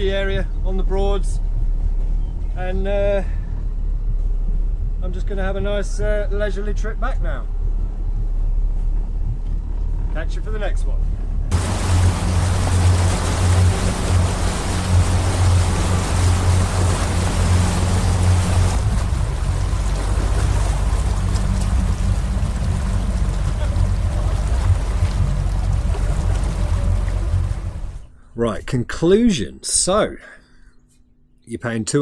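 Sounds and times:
motorboat engine humming: 0.0 - 5.6, 7.4 - 10.2, 11.1 - 28.2
wake water splashing: 11.5 - 28.1.

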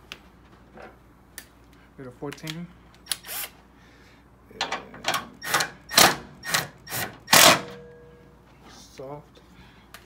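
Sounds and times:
impact wrench bursts: 3.1 - 3.6, 4.6 - 7.9.

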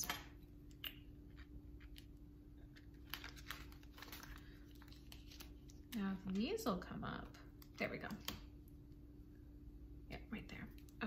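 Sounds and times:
steady low hum: 0.0 - 11.0
paper rustling: 2.7 - 6.4.

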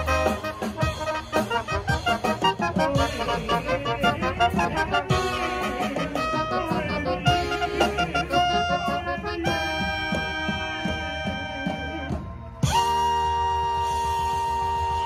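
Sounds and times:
drums: 0.0 - 15.0
trumpet playing: 0.0 - 15.0.

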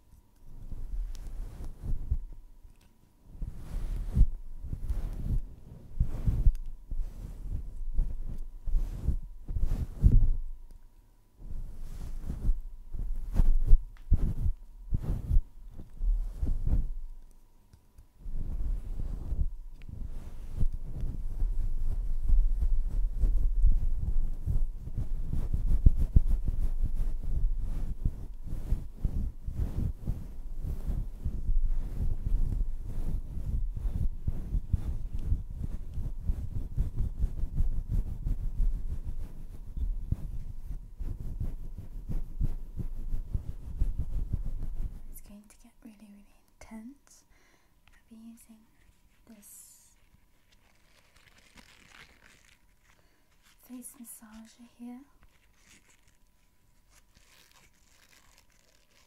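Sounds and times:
tool rubbing furry microphone cover: 0.0 - 2.3, 3.3 - 10.4, 11.4 - 17.0, 18.2 - 45.3, 48.8 - 59.0.

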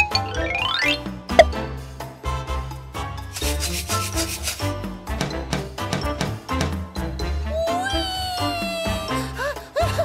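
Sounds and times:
background music: 0.0 - 10.0
plastic baby rattle shaken: 3.3 - 4.7.

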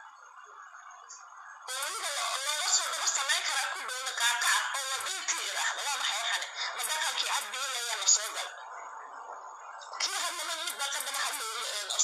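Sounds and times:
speech through phone speaker: 1.7 - 8.6, 10.0 - 12.0.

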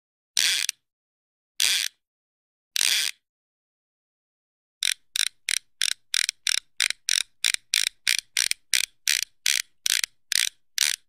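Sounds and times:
sharp mechanical clicks: 4.8 - 11.0.

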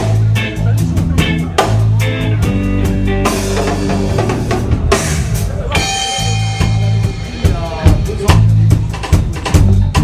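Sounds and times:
drum kit: 0.0 - 10.0
electric bass: 0.0 - 10.0
electric guitar: 0.0 - 10.0
cymbals washing: 3.4 - 8.3.

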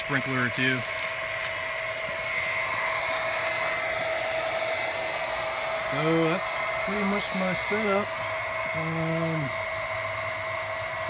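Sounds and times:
electric pump whining: 0.0 - 11.0
water spraying from hose: 0.0 - 11.0.

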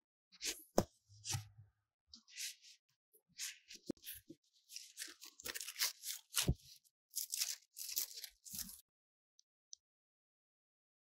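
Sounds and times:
record sleeve rustling and scraping: 3.4 - 8.8.

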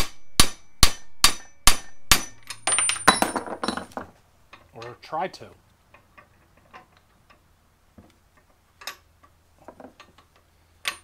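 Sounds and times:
hammer striking metal: 0.0 - 3.9
light metal clinks: 10.8 - 11.0.

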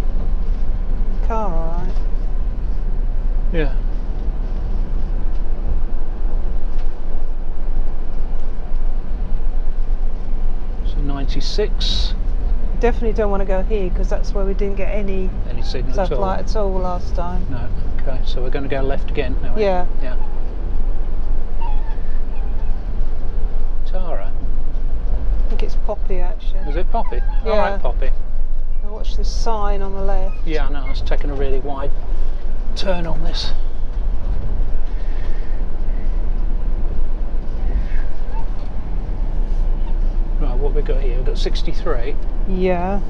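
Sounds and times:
motorhome engine rumble: 0.0 - 43.0
road noise: 0.0 - 43.0.

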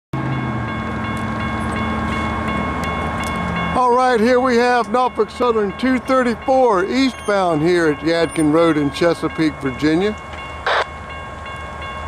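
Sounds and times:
railroad crossing bell ringing: 0.2 - 12.0.

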